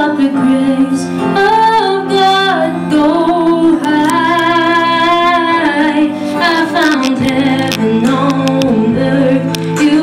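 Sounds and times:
musical accompaniment: 0.0 - 10.0
woman singing into a microphone: 0.0 - 10.0.

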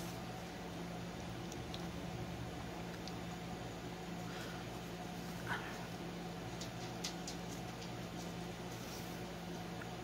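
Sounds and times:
air conditioner hum: 0.0 - 10.0.

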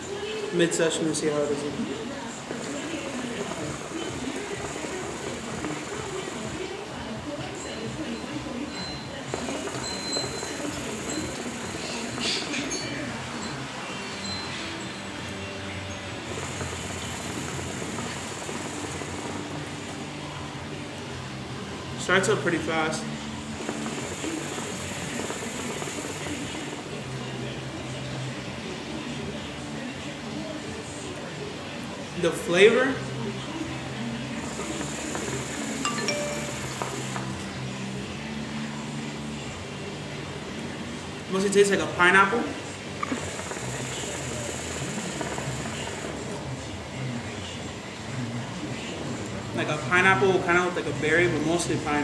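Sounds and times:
hookah water bubbling: 0.8 - 8.5, 9.2 - 13.8, 16.2 - 27.8, 34.2 - 37.4, 42.9 - 46.5.

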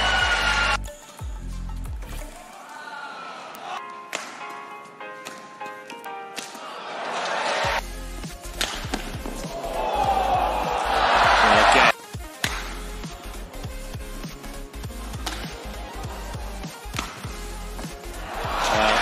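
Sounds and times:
crowd cheering: 0.0 - 0.8, 2.4 - 4.0, 6.4 - 7.8, 9.3 - 12.0, 17.9 - 19.0
rackets striking shuttlecock: 3.8 - 6.6, 8.4 - 9.6, 12.4 - 12.9, 15.1 - 15.8, 16.8 - 18.0
shoes hitting court: 3.8 - 6.6, 8.6 - 10.8.

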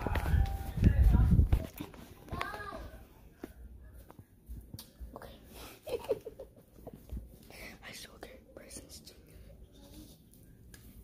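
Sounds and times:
child whispering: 7.5 - 10.2.

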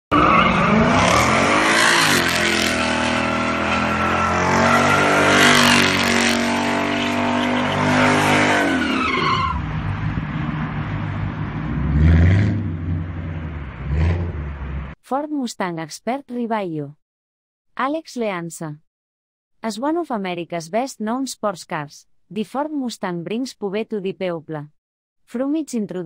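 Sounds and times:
tyres squealing and skidding: 0.1 - 9.9
car engine revving: 0.1 - 15.0.

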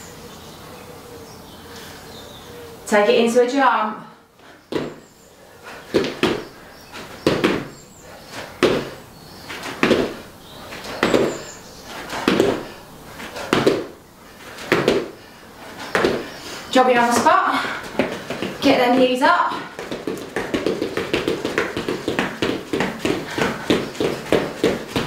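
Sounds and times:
trainers thudding on rubber floor: 4.7 - 5.0, 5.9 - 7.8, 8.6 - 14.0, 14.6 - 15.2, 15.9 - 16.3, 16.9 - 25.0.

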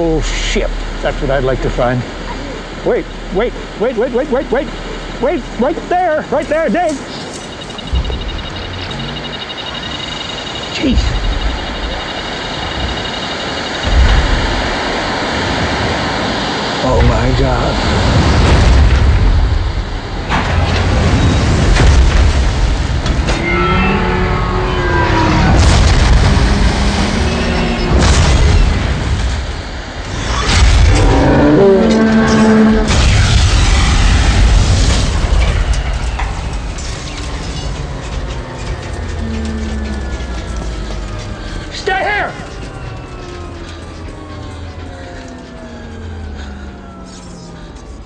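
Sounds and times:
deep continuous rumble: 0.0 - 48.0
deep rumble of crash landing: 17.8 - 23.4, 25.1 - 41.7.

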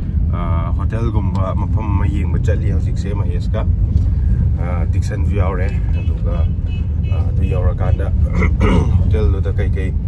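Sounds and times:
car engine and tyre noise: 0.0 - 10.0
man talking: 0.3 - 3.8, 4.5 - 10.0.

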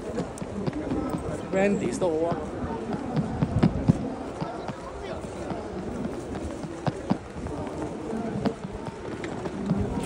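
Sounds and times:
crowd chatter: 0.0 - 10.0
footsteps on stone paving: 0.0 - 10.0.

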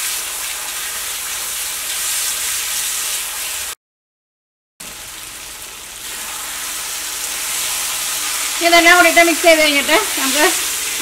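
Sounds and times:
food sizzling in a wok: 0.0 - 3.8, 4.8 - 11.0
person speaking: 8.6 - 10.6.

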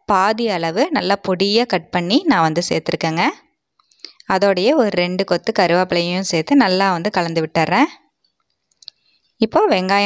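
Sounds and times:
person talking: 0.0 - 3.5, 4.1 - 8.1, 9.4 - 10.0.

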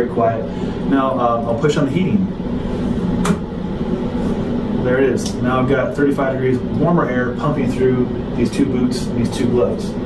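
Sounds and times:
dryer blower fan whirring: 0.0 - 10.0.

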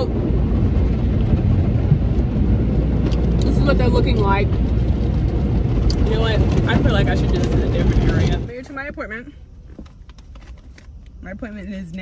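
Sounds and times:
car wash water rumbling: 0.0 - 8.8.

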